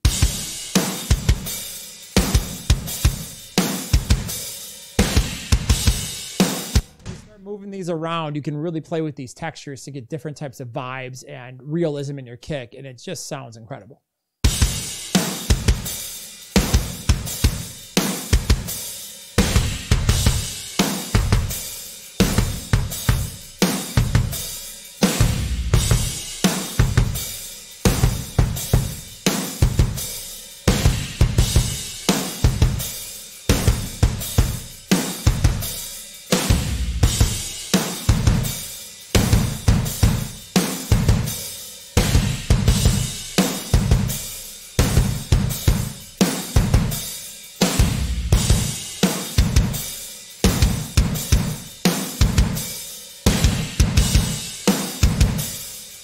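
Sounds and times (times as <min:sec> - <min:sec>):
drum kit groove: 0:00.0 - 0:08.7, 0:14.4 - 0:56.0.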